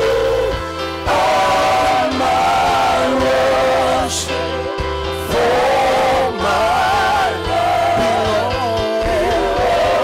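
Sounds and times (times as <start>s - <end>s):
bass notes: 0.0s - 10.0s
gospel singers on microphones: 0.0s - 10.0s.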